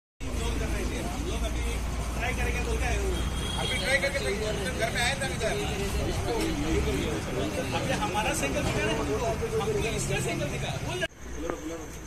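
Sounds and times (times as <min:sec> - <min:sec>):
people talking: 0:00.2 - 0:12.0.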